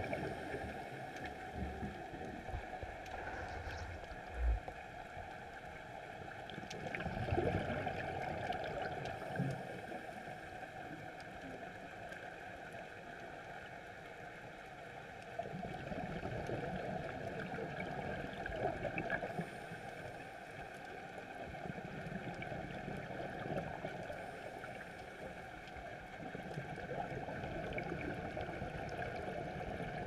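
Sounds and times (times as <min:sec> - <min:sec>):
regulator bubbles gurgling: 0:00.0 - 0:10.4, 0:15.4 - 0:19.6, 0:21.2 - 0:30.0
faint crackling: 0:02.2 - 0:05.6.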